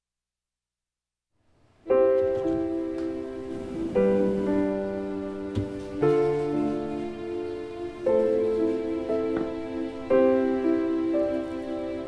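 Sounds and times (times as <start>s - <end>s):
piano music: 1.8s - 12.0s.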